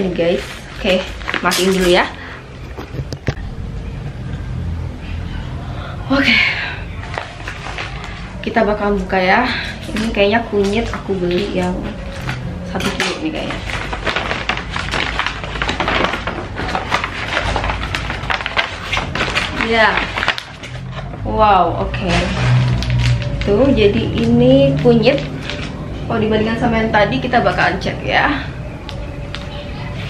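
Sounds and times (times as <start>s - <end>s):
low steady rumble: 2.2s - 29.9s
paper being torn and crumpled: 7.0s - 8.3s, 9.8s - 21.2s, 22.0s - 26.0s.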